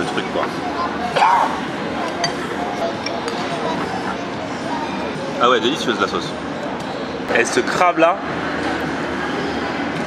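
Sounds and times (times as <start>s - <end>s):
murmur of diners' voices: 0.0s - 10.0s.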